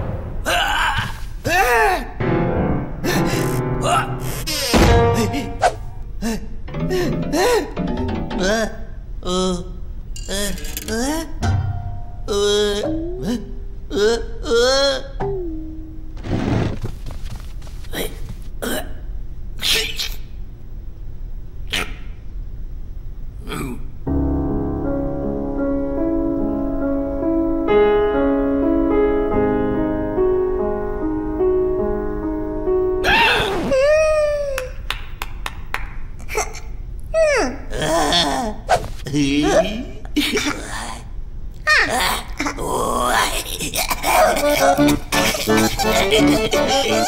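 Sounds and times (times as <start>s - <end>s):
cartoon held hum: 3.0s - 16.9s, 41.8s - 47.0s
cartoon grunts and clicks: 36.2s - 47.0s.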